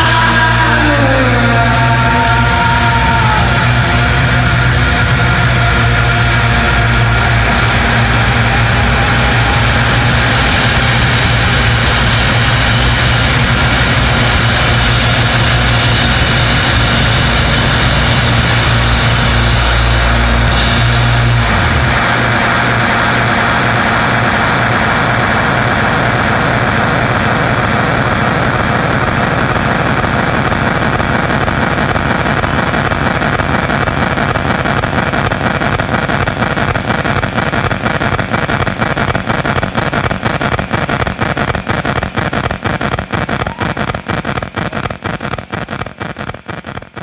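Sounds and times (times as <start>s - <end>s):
distorted guitar amplifier noise: 0.0s - 47.0s.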